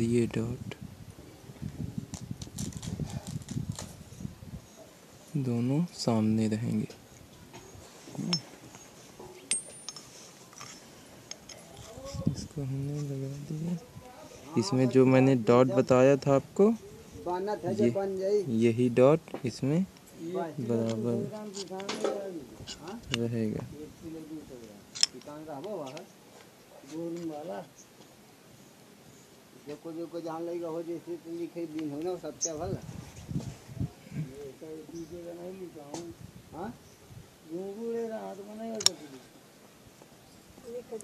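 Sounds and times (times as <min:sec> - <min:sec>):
man talking: 0:00.0 - 0:00.8, 0:05.3 - 0:07.0, 0:11.7 - 0:26.1, 0:29.7 - 0:32.9, 0:37.5 - 0:39.3
faint background hiss: 0:00.0 - 0:41.0
man making hesitation sounds: 0:08.1 - 0:08.5, 0:11.9 - 0:13.9
metal pump parts clicking: 0:08.2 - 0:08.5, 0:09.5 - 0:12.0, 0:24.9 - 0:25.3.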